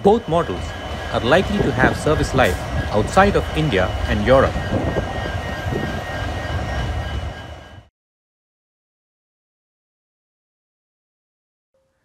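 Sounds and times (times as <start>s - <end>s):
diesel locomotive passing: 0.0s - 7.9s.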